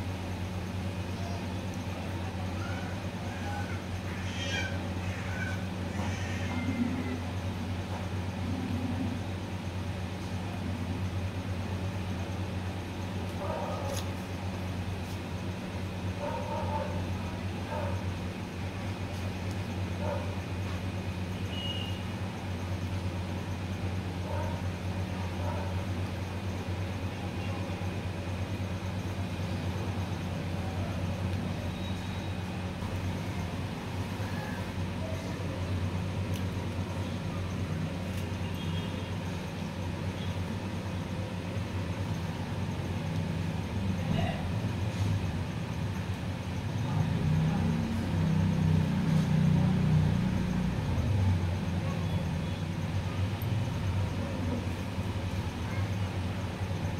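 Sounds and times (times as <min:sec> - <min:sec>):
steady low background hum: 0:00.0 - 0:56.9.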